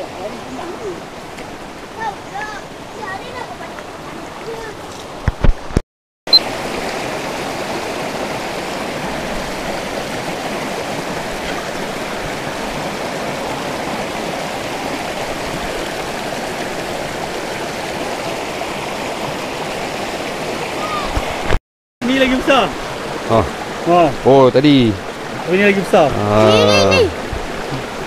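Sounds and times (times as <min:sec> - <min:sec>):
stream rushing over stones: 0:00.0 - 0:28.0.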